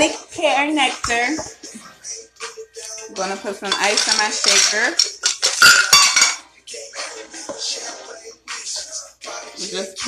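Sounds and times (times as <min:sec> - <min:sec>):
ice cubes clinking in a shaker: 0:03.7 - 0:06.4.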